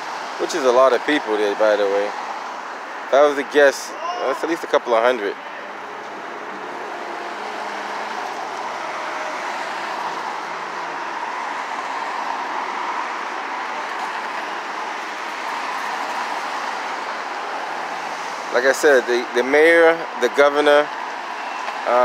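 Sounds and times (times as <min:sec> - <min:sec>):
rushing street traffic: 0:00.0 - 0:22.0.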